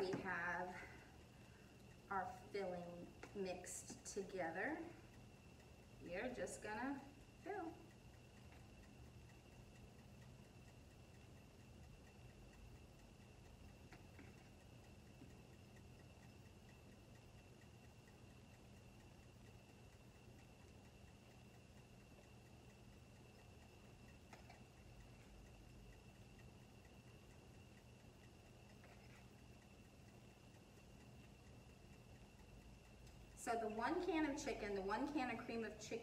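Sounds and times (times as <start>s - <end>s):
faint clicks: 0.0s - 36.0s
faint high-pitched whine: 0.0s - 36.0s
faint ticking: 0.0s - 36.0s.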